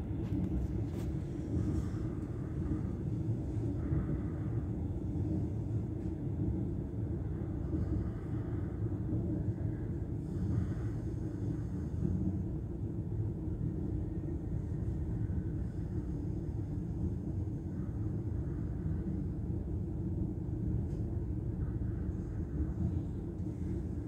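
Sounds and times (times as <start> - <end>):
train rumbling from inside carriage: 0.0 - 24.0.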